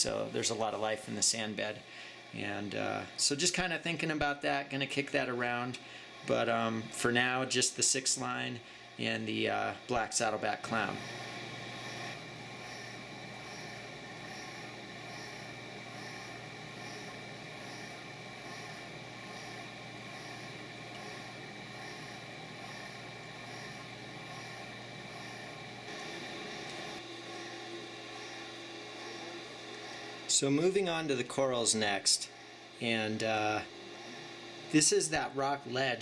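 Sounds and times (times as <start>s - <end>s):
aquarium pumps and fans humming: 0.0s - 36.0s
pulsing faint hiss: 0.0s - 36.0s.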